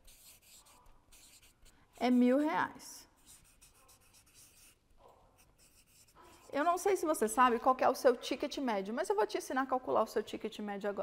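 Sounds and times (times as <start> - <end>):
marker scratching on paper: 0.0 - 7.0.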